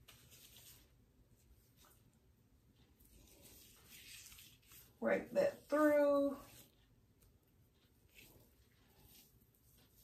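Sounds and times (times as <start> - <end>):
hands rustling through hair: 0.0 - 2.2, 3.0 - 6.7, 8.0 - 10.0.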